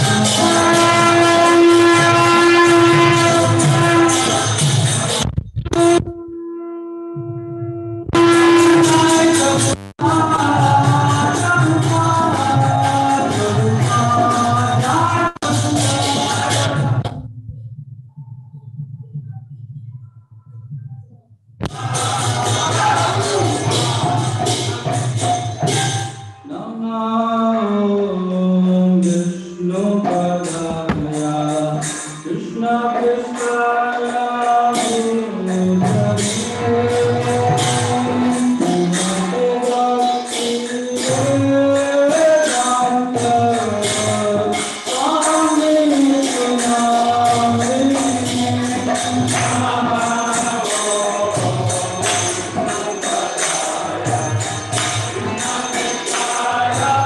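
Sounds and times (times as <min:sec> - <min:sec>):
devotional chanting: 0:00.0 - 0:05.2, 0:08.2 - 0:17.2, 0:21.7 - 0:57.0
conch shell horn note: 0:00.5 - 0:04.5, 0:05.8 - 0:09.5
hand cymbals jingling: 0:33.2 - 0:57.0.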